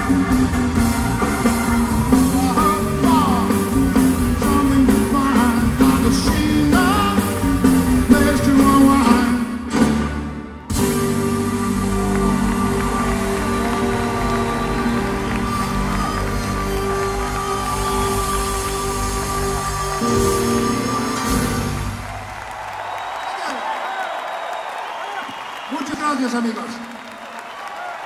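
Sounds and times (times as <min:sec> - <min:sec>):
audience applauding: 0:00.0 - 0:09.4, 0:10.8 - 0:28.0
rock band playing: 0:00.0 - 0:22.8.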